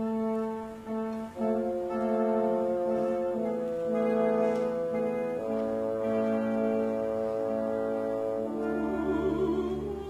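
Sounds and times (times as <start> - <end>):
orchestra playing sustained chords: 0.0 - 10.0.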